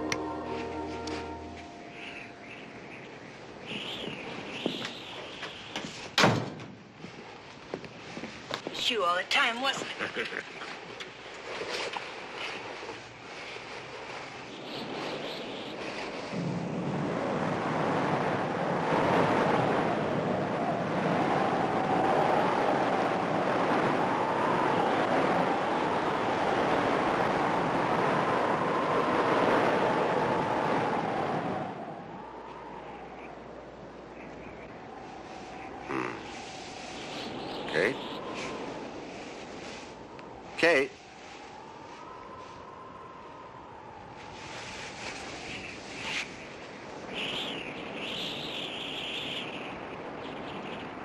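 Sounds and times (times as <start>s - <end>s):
high wavering moan: 0.0s - 2.5s, 35.8s - 36.7s
howling wind: 0.0s - 51.0s.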